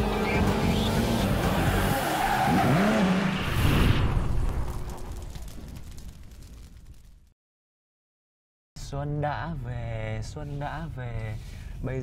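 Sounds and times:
car engine running: 0.0 - 2.0
music: 0.0 - 2.2.

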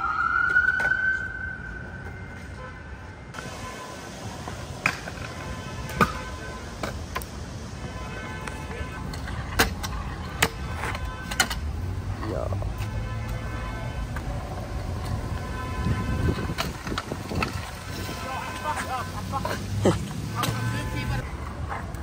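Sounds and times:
siren wailing: 0.0 - 2.6
scooter wheels rolling on concrete: 0.0 - 22.0
scooter deck clacking on pavement: 4.4 - 7.4, 8.4 - 11.8, 12.8 - 19.6.

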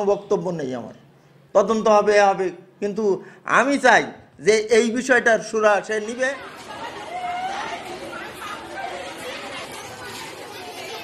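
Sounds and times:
chatter of people talking: 5.7 - 11.0.

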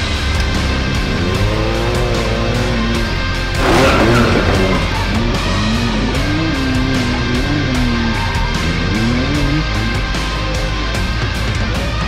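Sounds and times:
hard rock music: 0.0 - 12.0
off-road vehicle driving past: 3.3 - 10.0.

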